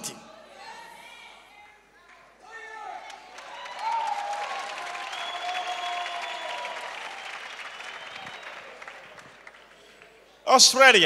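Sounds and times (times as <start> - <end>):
congregation applauding: 2.7 - 10.5.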